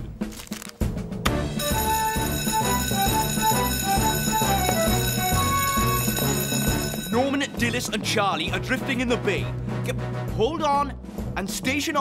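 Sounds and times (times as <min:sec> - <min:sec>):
electric alarm bell ringing: 0:01.6 - 0:07.6.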